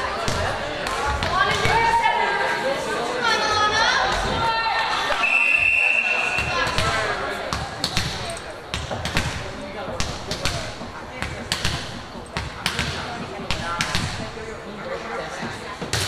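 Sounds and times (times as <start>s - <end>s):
whistle blast: 5.2s - 6.6s.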